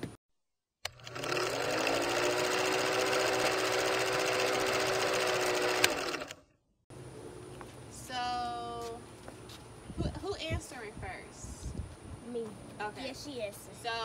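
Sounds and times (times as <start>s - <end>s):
film projector clatter: 0.9s - 6.4s.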